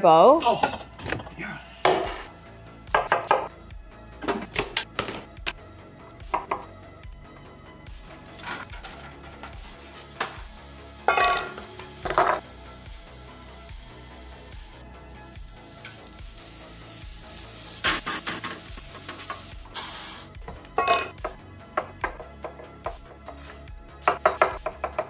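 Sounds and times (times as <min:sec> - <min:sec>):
background music: 0:00.0 - 0:25.0.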